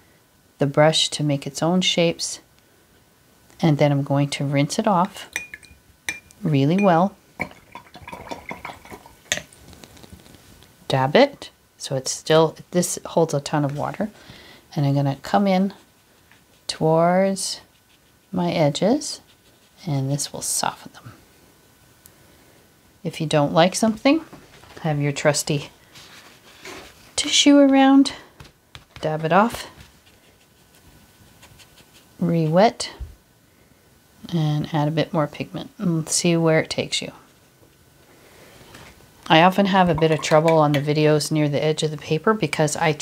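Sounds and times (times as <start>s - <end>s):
faint steady hum: 0.0s - 43.0s
brush clinking against jar: 5.3s - 9.5s, 40.0s - 40.9s
soft ticks and rustles of brush: 9.5s - 10.8s, 15.3s - 21.2s, 25.9s - 33.2s.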